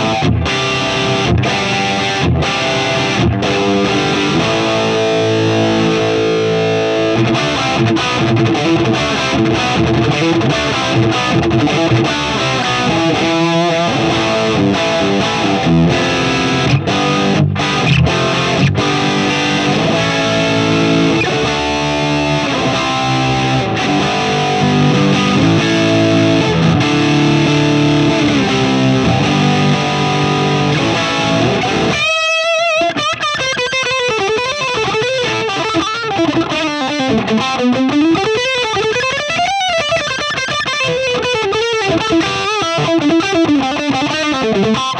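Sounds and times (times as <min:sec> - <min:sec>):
distorted electric guitar: 0:00.0 - 0:44.9.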